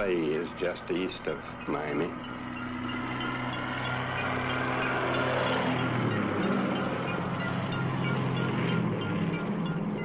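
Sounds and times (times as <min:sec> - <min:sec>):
propeller plane engines droning: 0:00.0 - 0:10.0.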